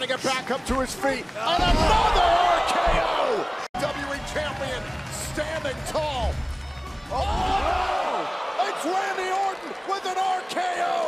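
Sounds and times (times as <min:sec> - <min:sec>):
thuds from wrestling ring: 0:01.5 - 0:03.2
excited voices shouting: 0:06.8 - 0:11.0.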